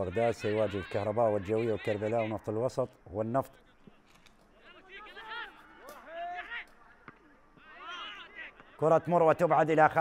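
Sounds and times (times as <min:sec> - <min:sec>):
distant players shouting: 0:00.0 - 0:02.5, 0:03.6 - 0:10.0.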